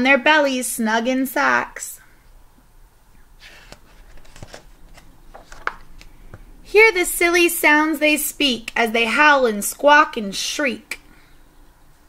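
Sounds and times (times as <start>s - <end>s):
book pages turning: 3.4s - 6.5s.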